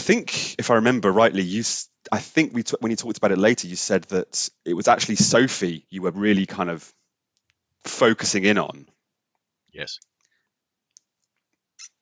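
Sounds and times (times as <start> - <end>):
person speaking: 0.0 - 6.8, 7.9 - 8.9, 9.8 - 10.0.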